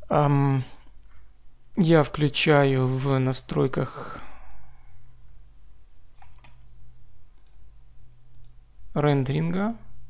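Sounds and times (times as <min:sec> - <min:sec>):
steady low hum: 0:00.0 - 0:10.0
computer mouse clicks: 0:06.1 - 0:06.7, 0:07.3 - 0:08.6.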